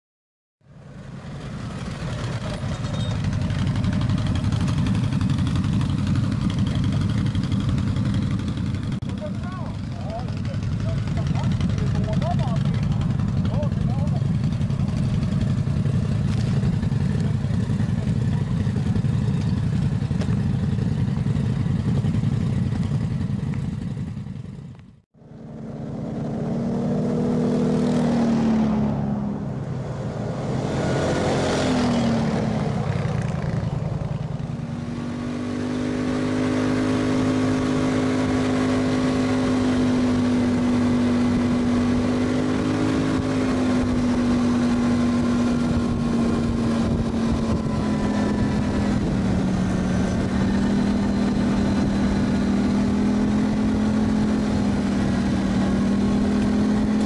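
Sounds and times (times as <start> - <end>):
quad bike engines passing: 0.7 - 57.0.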